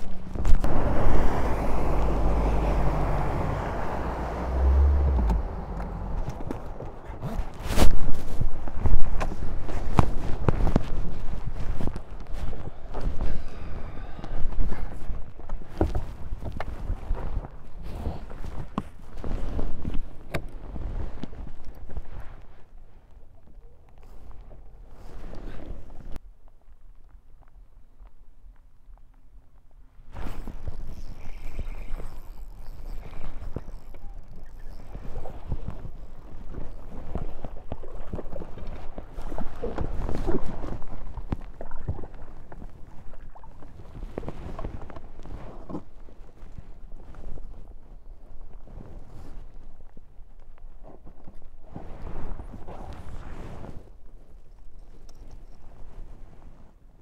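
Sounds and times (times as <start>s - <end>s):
knocks and thumps on fiberglass boat: 0.0s - 21.4s, 32.8s - 46.6s.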